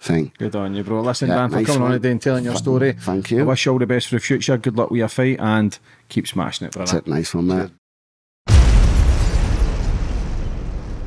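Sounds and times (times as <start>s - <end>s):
cinematic deep boom: 8.5s - 11.0s.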